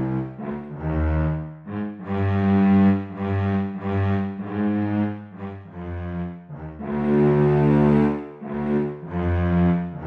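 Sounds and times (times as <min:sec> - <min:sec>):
slow orchestral bowed strings: 0:00.0 - 0:10.0.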